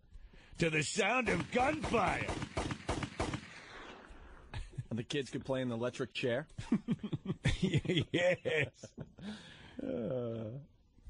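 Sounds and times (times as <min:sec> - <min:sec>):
gunshots: 0:00.9 - 0:04.5
gunshot echo: 0:01.2 - 0:04.5.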